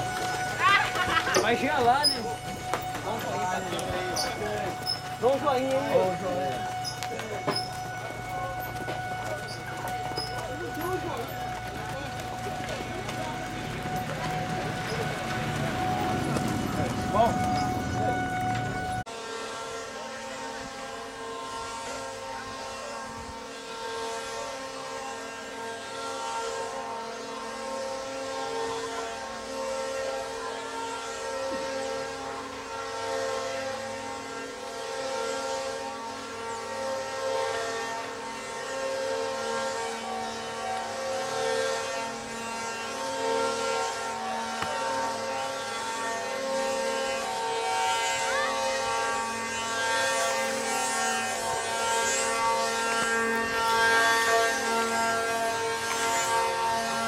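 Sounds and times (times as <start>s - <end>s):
wooden cart axles wailing: 0.0s - 19.0s, 41.4s - 57.0s.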